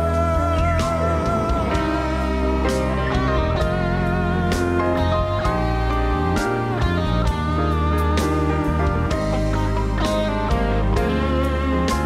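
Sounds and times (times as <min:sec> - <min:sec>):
guitar line: 0:00.0 - 0:12.0
live band music: 0:00.0 - 0:12.0.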